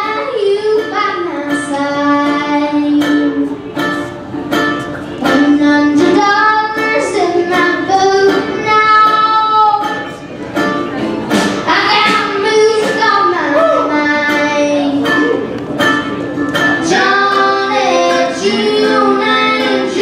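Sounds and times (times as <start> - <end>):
girl singing: 0.0 - 3.6, 5.2 - 10.2, 11.6 - 15.5, 16.8 - 20.0
strummed guitar: 0.0 - 20.0.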